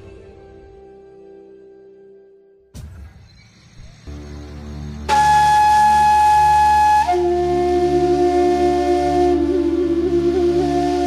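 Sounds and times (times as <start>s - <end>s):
steady low drone: 4.0s - 11.0s
flute-like long low note: 4.9s - 11.0s.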